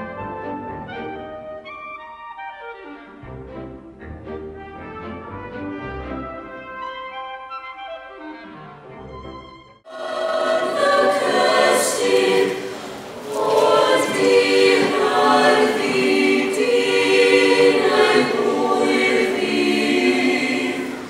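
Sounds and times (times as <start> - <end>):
mixed choir singing a cappella: 9.9 - 21.0.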